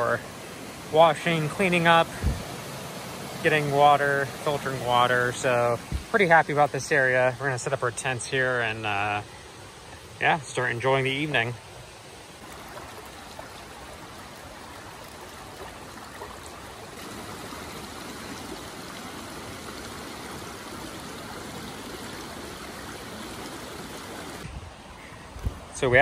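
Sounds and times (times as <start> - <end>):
water rushing over stones: 0.0 - 26.0.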